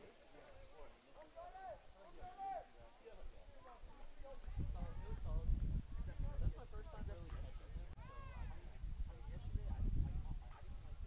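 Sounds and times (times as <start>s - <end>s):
open-air ballpark ambience: 0.0s - 11.0s.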